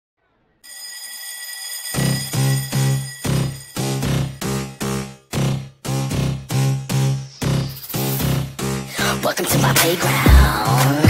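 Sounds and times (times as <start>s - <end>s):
high-pitched electric ringing: 0.7s - 5.3s
music beat with heavy bass: 4.0s - 11.0s.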